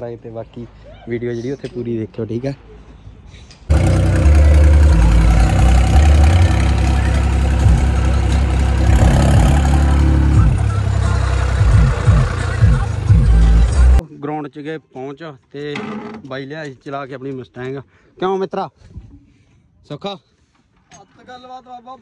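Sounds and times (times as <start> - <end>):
loud bass-heavy music: 3.7 - 14.0
tractor engine running: 3.7 - 14.0.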